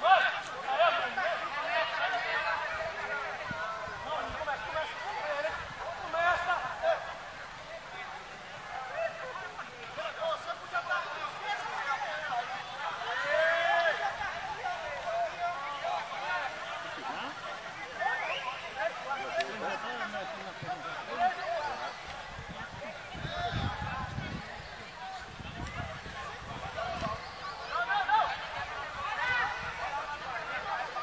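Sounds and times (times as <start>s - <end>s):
spectators talking and calling out: 0.0s - 31.0s.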